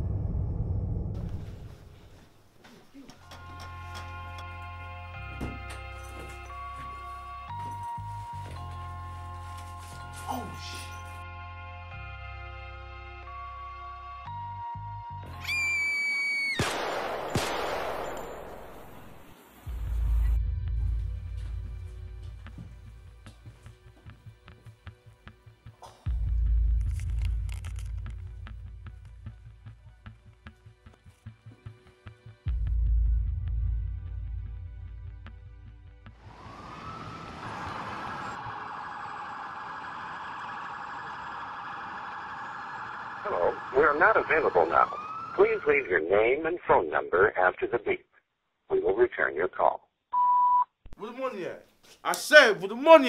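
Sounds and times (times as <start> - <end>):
music: 3.2 - 15.7, 19.6 - 36.3
rising whistle-like tone: 15.4 - 16.6, 36.3 - 45.0
sharp bangs: 16.6 - 19.4
noisy street background: 36.0 - 46.3.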